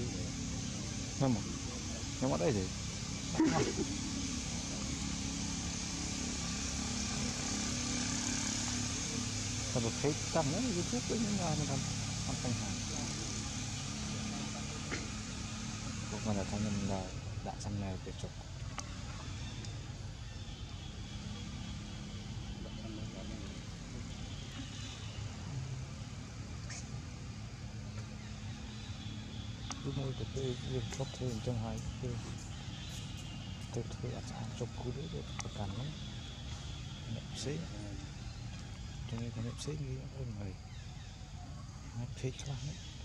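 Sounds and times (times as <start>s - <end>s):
background hiss: 0.0s - 43.0s
low engine hum: 0.0s - 43.0s
steady low rumble: 0.0s - 43.0s
faint voices: 8.9s - 15.3s, 22.5s - 24.7s, 29.8s - 32.4s, 33.7s - 36.0s, 37.0s - 38.2s.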